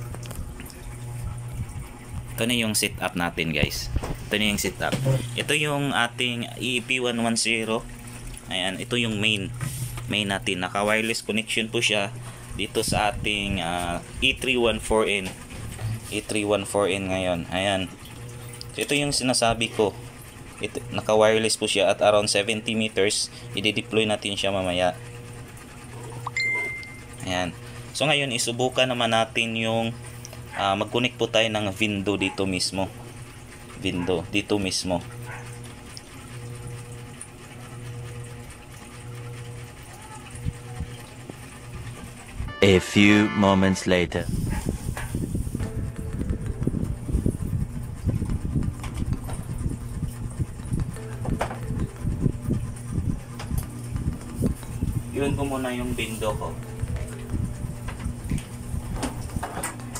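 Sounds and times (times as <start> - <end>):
low thumps and rumble: 0.0 - 2.4, 44.3 - 55.2, 56.6 - 59.9
phone notification ding: 26.3 - 27.1, 42.5 - 43.9
faint background music: 55.0 - 58.1.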